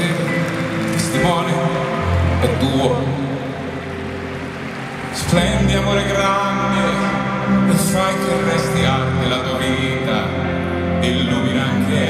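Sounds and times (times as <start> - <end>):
crowd noise: 0.0 - 12.0
live band sustained chord: 0.0 - 12.0.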